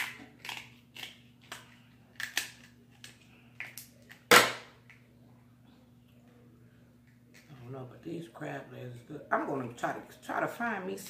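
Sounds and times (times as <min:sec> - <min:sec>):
crab shell cracking: 0:00.0 - 0:04.4.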